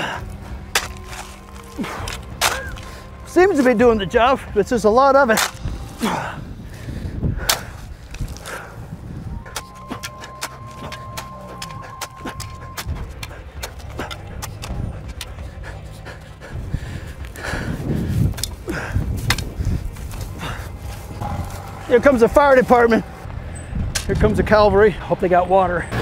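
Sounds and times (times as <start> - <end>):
man breathing hard: 0.0 - 3.3, 5.6 - 21.3
shovel beating ground: 0.0 - 4.0, 5.2 - 6.4, 7.4 - 8.8, 9.5 - 15.5
wind rumbling on microphone: 2.7 - 25.2
sharp ticks and scrapes: 9.5 - 16.4.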